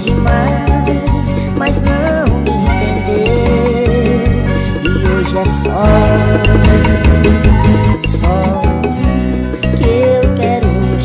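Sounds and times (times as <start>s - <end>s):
band dance music: 5.5s - 8.4s.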